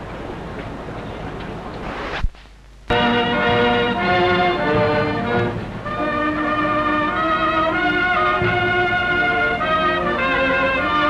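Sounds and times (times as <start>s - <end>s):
orchestral brass chords: 2.9s - 11.0s.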